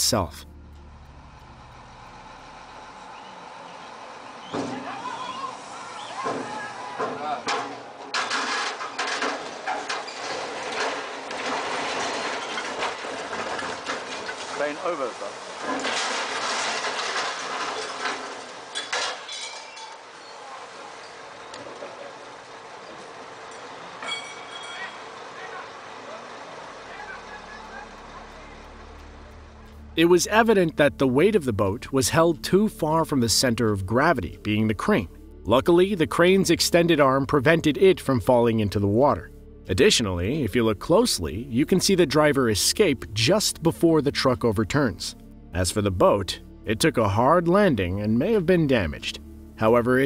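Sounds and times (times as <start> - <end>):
people shouting and crying out: 4.5 - 8.0
clatter: 7.5 - 20.1.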